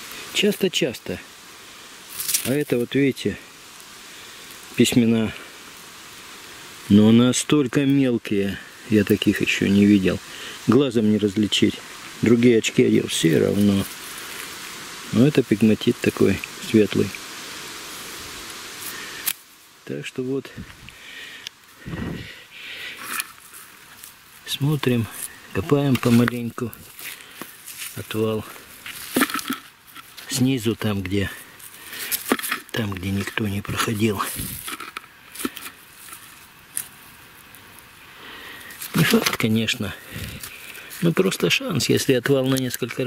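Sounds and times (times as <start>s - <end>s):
steady outdoor hiss: 0.0s - 43.0s
soil and rock scraping: 2.1s - 3.5s, 6.8s - 17.2s, 17.9s - 43.0s.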